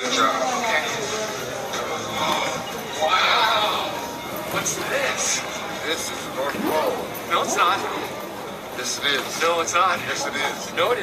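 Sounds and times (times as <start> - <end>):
busy store ambience: 0.0 - 11.0.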